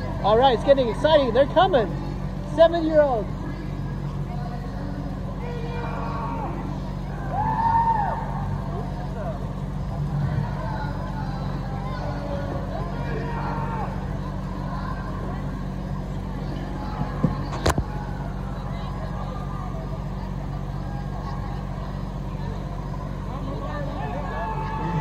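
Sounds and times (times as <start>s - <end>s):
vehicle engine idling: 0.0s - 25.0s.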